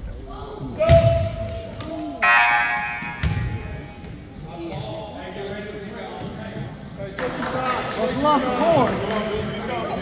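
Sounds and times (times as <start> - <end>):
buzzing scoreboard horn: 2.2 - 3.2.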